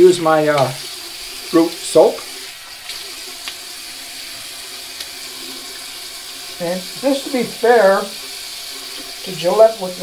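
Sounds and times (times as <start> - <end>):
water running from sink tap: 0.0 - 10.0.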